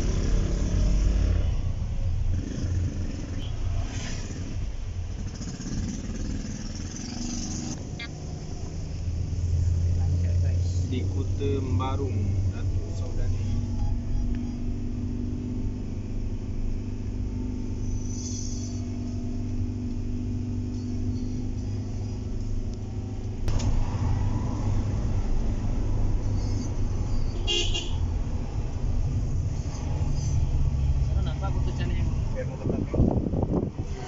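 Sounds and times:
car engine and road drone: 0.0s - 34.0s.

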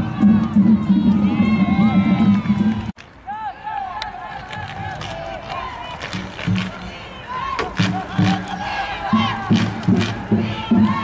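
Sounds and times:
faint crowd noise: 0.0s - 11.0s.

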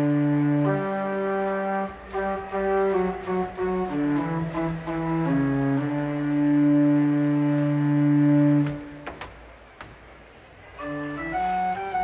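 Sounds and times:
pipe organ chords: 0.0s - 9.2s, 10.8s - 12.0s.

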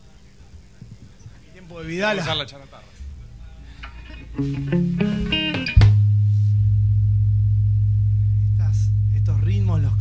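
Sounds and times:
amplified low drone: 6.0s - 10.0s.

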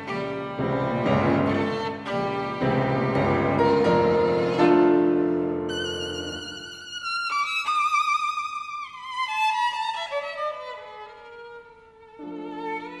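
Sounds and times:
violin melody with vibrato: 0.0s - 13.0s.

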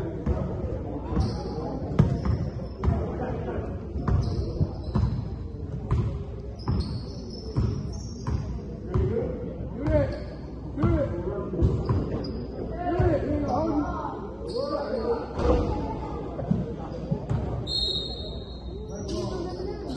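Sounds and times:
players' voices: 0.0s - 19.9s
sneaker squeaks: 1.0s - 3.0s, 4.0s - 8.6s, 9.8s - 10.4s, 11.6s - 15.8s, 16.5s - 19.9s.

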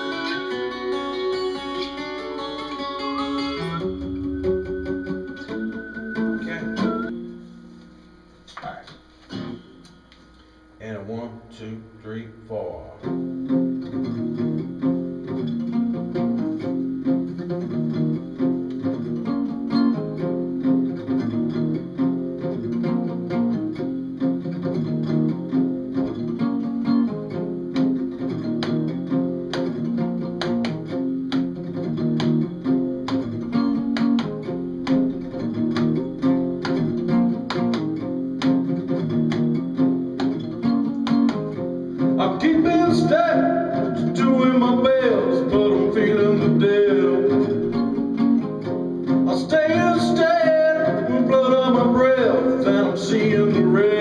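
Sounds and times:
guitar strumming: 0.0s - 54.0s
person singing: 42.2s - 48.1s, 49.2s - 54.0s.

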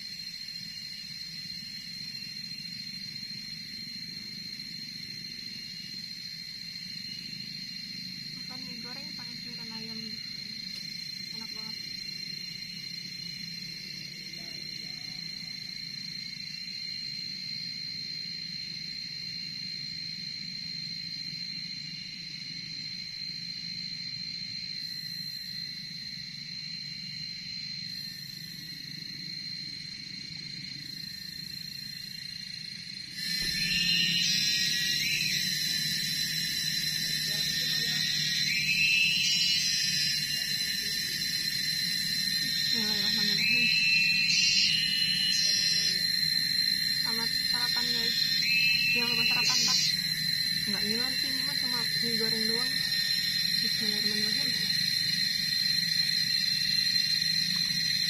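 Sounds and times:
high-pitched insect drone: 0.0s - 58.0s
rising call: 33.3s - 55.0s.

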